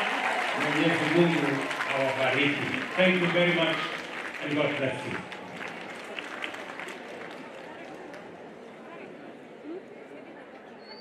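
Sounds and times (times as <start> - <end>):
audience applauding: 0.0 - 8.3.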